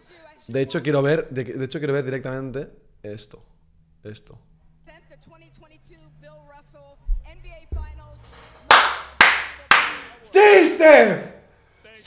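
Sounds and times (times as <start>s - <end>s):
loud hand claps: 8.7s - 11.0s.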